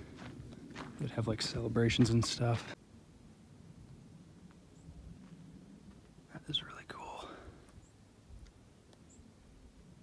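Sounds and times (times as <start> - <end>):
faint low rumble: 0.0 - 10.0
person whispering: 6.3 - 7.6.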